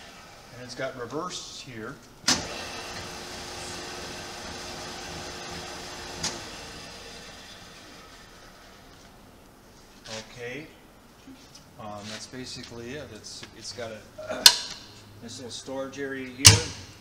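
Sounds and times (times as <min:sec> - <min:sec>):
milling machine motor humming: 0:02.4 - 0:08.7.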